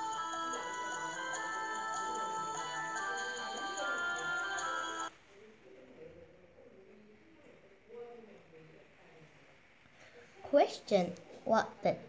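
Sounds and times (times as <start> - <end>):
held melodic tones: 0.0 - 5.1.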